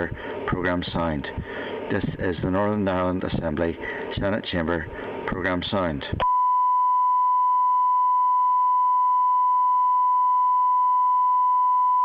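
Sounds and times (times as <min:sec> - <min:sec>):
steady pure beep tone: 0:06.2 - 0:12.0.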